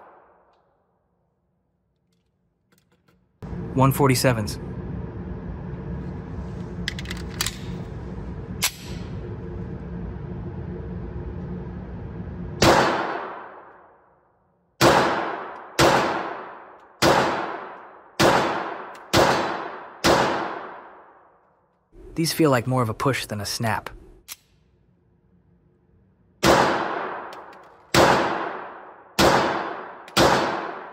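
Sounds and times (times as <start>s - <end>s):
pistol shots echoing indoors: 0.0s - 0.9s, 12.6s - 21.7s, 26.3s - 30.9s
steady low hum: 0.1s - 30.9s.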